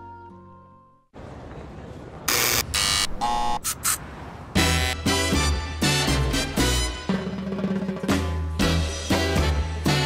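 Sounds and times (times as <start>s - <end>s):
intercom buzzer: 2.3s - 4.0s.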